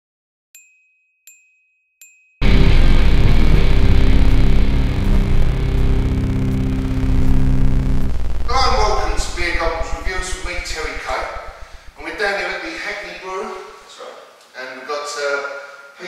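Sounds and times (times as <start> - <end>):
intro music with low chords: 2.4 - 13.8.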